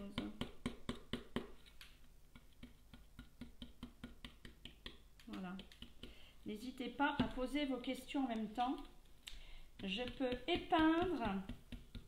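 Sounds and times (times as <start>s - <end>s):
stencil brush tapping on plastic: 0.0s - 6.2s, 7.0s - 7.5s, 9.8s - 12.0s.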